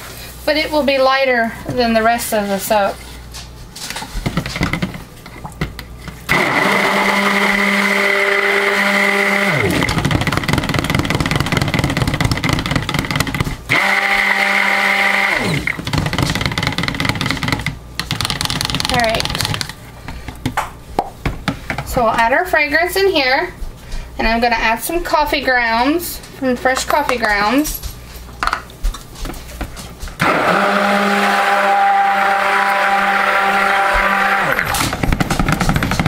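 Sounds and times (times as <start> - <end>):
stick blender whining: 6.3 - 19.7, 30.2 - 36.0.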